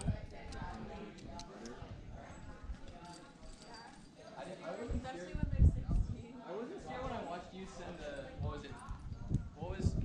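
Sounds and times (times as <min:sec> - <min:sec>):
faint indistinct voices: 0:00.0 - 0:10.0
climbing gear clinking: 0:01.4 - 0:04.9.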